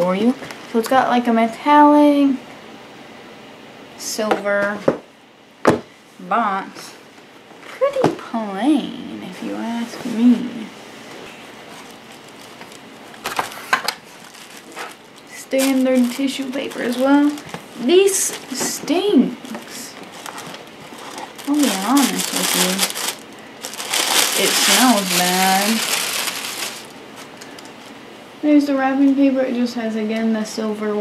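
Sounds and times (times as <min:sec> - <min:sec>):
tissue paper rustling: 0:11.6 - 0:18.6, 0:19.4 - 0:27.4.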